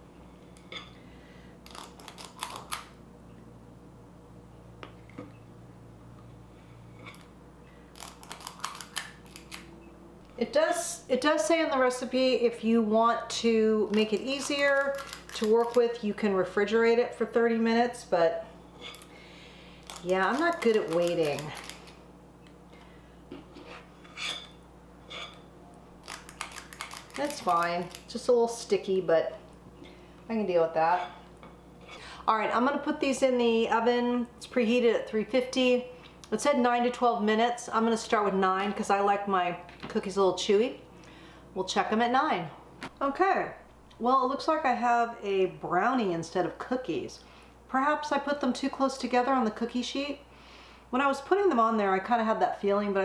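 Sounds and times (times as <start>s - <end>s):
cookie scoop clicking and scraping: 13.9s - 16.0s, 19.9s - 21.9s, 26.0s - 28.2s
metal scoop scraping dough: 19.9s - 21.8s.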